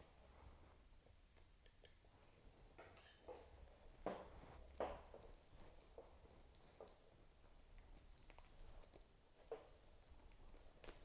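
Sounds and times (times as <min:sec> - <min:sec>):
soft rustling: 0:00.0 - 0:01.2, 0:02.1 - 0:11.0.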